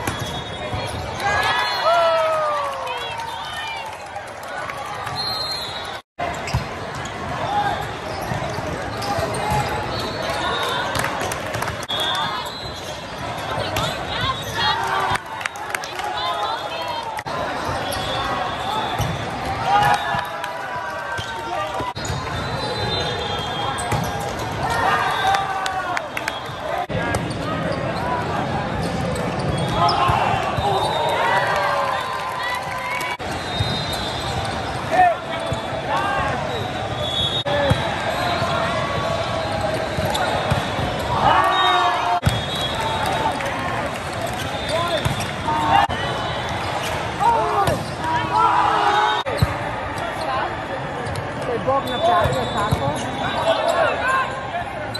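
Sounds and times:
spectators' voices: 0:00.0 - 0:54.9
players shouting: 0:29.4 - 0:54.9
volleyball sharp hits: 0:42.2 - 0:43.2, 0:44.8 - 0:45.5, 0:46.8 - 0:48.3.

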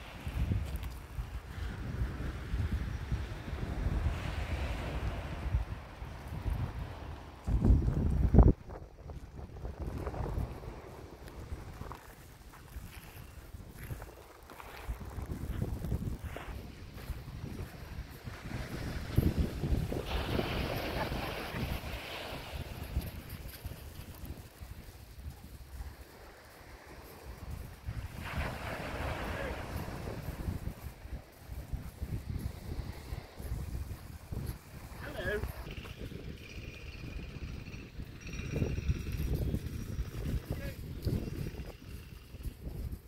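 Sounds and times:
small waves washing on shore: 0:00.0 - 0:08.2, 0:09.6 - 0:36.2
wind buffeting microphone: 0:00.0 - 0:43.0.

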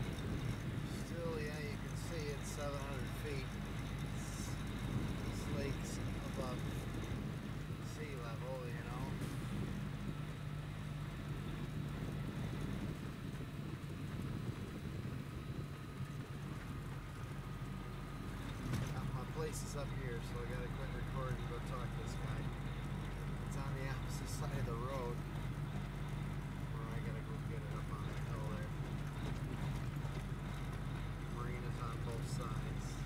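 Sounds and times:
truck diesel engine from cab: 0:00.0 - 0:33.0
tyre road noise: 0:00.0 - 0:33.0.

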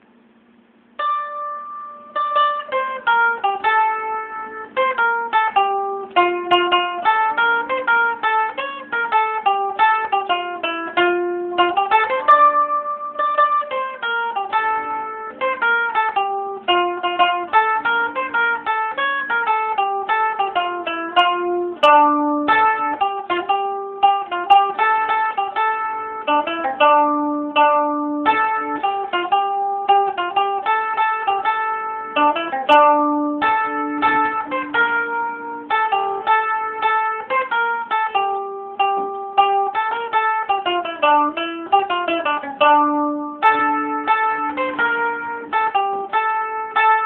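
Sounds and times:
mandolin playing folk melody: 0:01.0 - 0:47.0.

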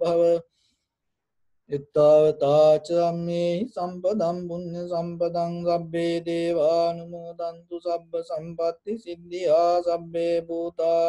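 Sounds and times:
man chanting in monotone: 0:00.0 - 0:00.4, 0:01.7 - 0:11.0.

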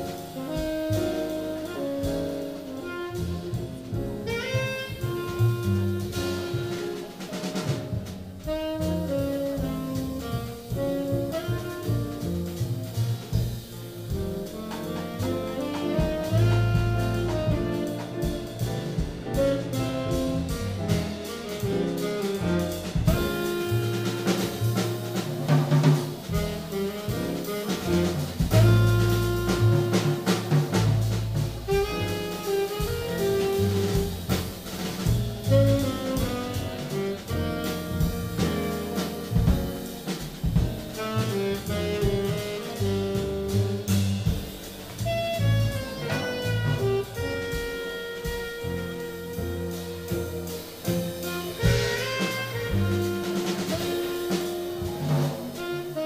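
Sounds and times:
drum kit: 0:00.0 - 0:56.0
piano: 0:00.0 - 0:56.0
upright double bass: 0:00.0 - 0:56.0
saxophone melody: 0:00.4 - 0:03.6, 0:04.2 - 0:07.2, 0:08.4 - 0:12.2, 0:14.5 - 0:25.3, 0:26.3 - 0:34.5, 0:35.4 - 0:39.8, 0:40.8 - 0:43.9, 0:45.0 - 0:56.0.

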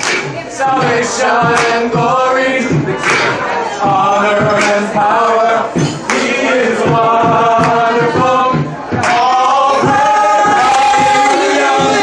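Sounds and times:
beatbox percussion: 0:00.0 - 0:12.0
vocal group singing in harmony: 0:00.0 - 0:12.0.

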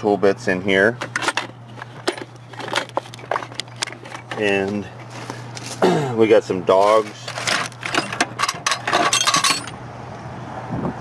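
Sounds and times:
metal tools clinking: 0:01.0 - 0:05.8, 0:06.8 - 0:09.8.

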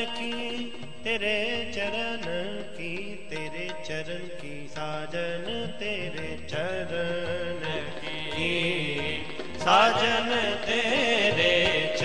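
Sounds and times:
harmonium melody: 0:00.0 - 0:12.0
tabla strokes: 0:00.0 - 0:12.0.

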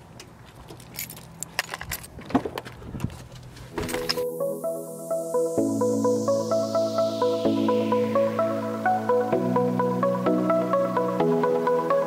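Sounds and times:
electronic music: 0:03.9 - 0:12.0.

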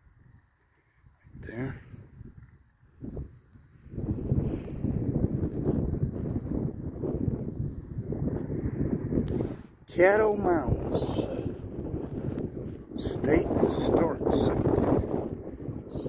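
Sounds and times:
wind buffeting microphone: 0:01.1 - 0:16.0.

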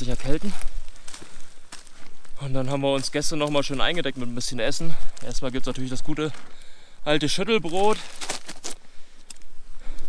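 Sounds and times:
plastic packaging crinkling: 0:07.6 - 0:08.8.

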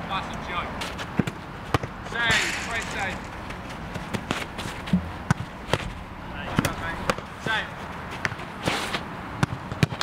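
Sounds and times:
short scuffing rush: 0:00.8 - 0:06.0.

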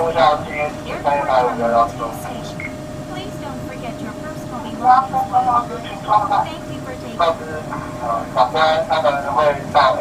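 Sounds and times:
person speaking: 0:00.0 - 0:10.0
steady high-pitched tone: 0:00.0 - 0:10.0
train cab low rumble: 0:00.0 - 0:10.0.

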